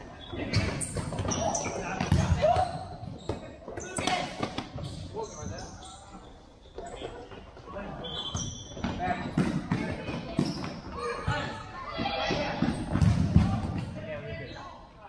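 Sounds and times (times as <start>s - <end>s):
ball kicked and bouncing: 0.5s - 4.8s, 8.8s - 14.0s.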